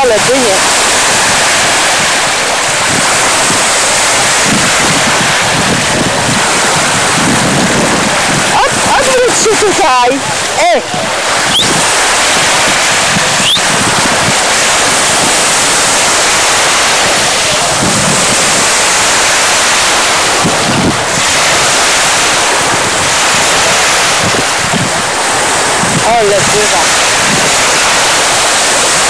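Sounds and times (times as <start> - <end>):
small waves washing ashore: 0.0 - 29.0
wind on microphone: 0.0 - 29.0.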